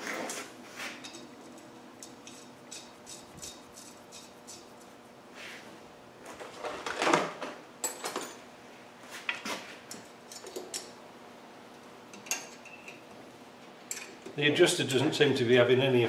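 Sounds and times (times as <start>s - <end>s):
hand tool scraping metal brake: 2.0s - 4.8s.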